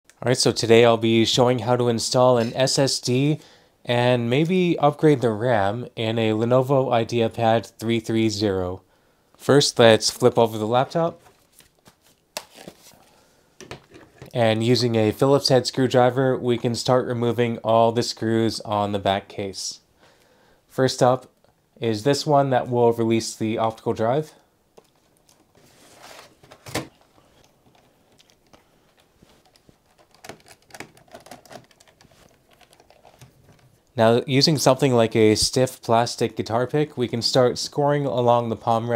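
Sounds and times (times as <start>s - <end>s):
handling on plastic case: 24.8s - 33.9s.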